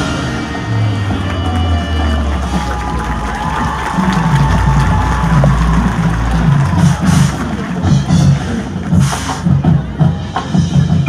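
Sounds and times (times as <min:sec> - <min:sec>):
drums pulsing: 0:00.0 - 0:11.0
marching band music: 0:00.0 - 0:11.0.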